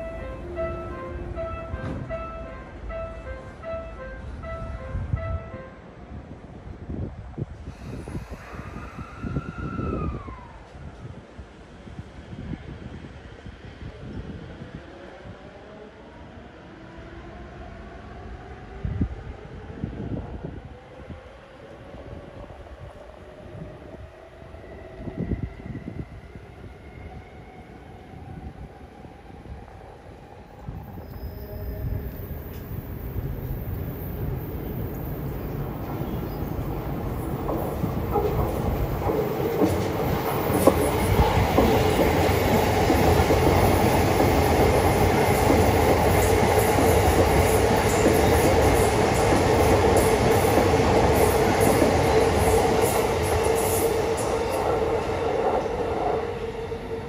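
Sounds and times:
train thumps: 0:01.6 - 0:02.4, 0:36.9 - 0:51.9
wheel and rail rumble: 0:30.6 - 0:57.0.

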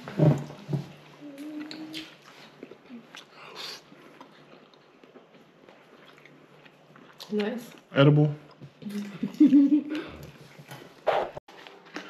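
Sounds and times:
man chewing food: 0:00.0 - 0:12.0.

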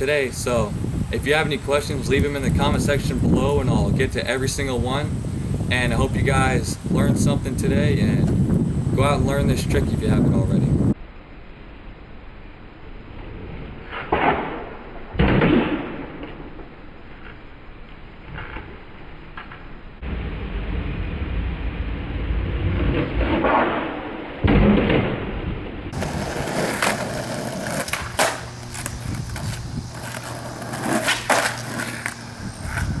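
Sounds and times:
skateboard wheels rolling on concrete: 0:00.0 - 0:11.0, 0:12.4 - 0:33.0
skateboard clacking on ground: 0:25.9 - 0:33.0.

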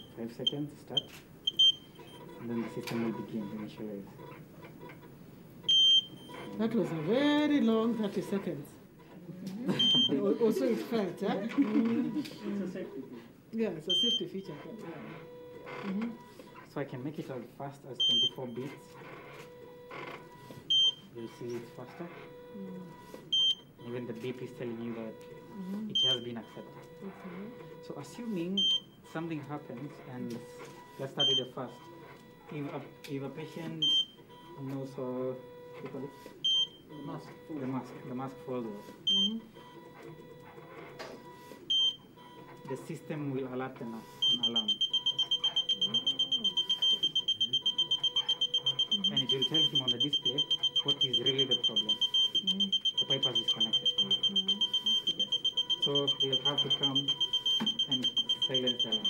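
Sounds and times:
rapid high-pitched alarm beeps: 0:13.8 - 0:14.9, 0:18.0 - 0:18.7, 0:23.3 - 0:25.1, 0:25.9 - 0:28.9, 0:31.0 - 0:31.8, 0:33.3 - 0:34.6, 0:39.0 - 0:39.8, 0:41.7 - 0:43.4, 0:44.1 - 0:59.0.

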